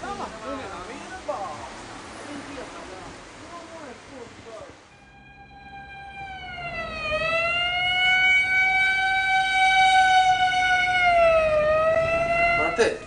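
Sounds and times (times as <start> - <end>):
siren-like wailing tone: 4.9 - 12.8.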